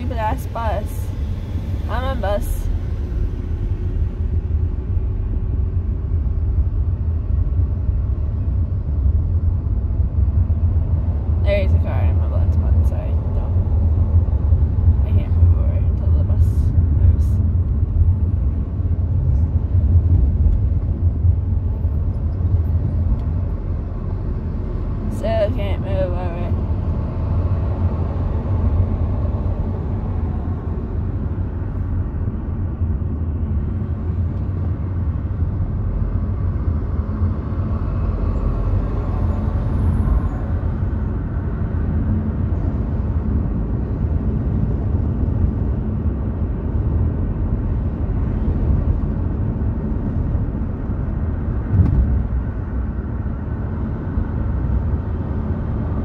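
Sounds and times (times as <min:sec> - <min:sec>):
car engine and tyre noise: 0:00.0 - 0:56.0.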